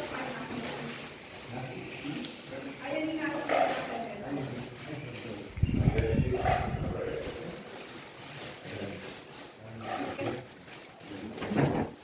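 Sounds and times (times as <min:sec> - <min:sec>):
muffled group talking: 0:00.0 - 0:10.4.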